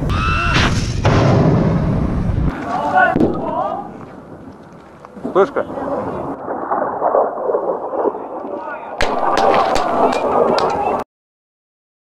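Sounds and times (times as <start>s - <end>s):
burst of noise with sharp cracks: 0.5s - 3.8s, 6.3s - 11.0s
men talking: 5.2s - 6.3s, 8.1s - 9.0s.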